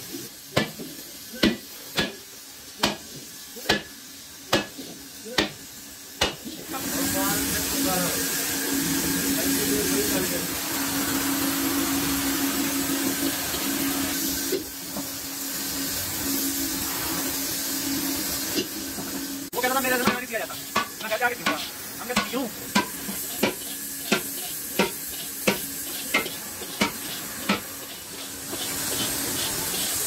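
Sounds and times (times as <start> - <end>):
steady hiss: 0.0 - 30.0
steel tool scraping metal bowl: 22.7 - 30.0.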